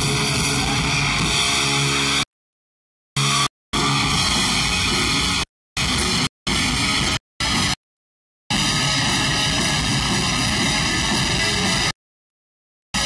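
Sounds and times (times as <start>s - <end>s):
heavy metal band playing: 0.0s - 2.2s, 3.2s - 7.8s, 8.5s - 11.9s.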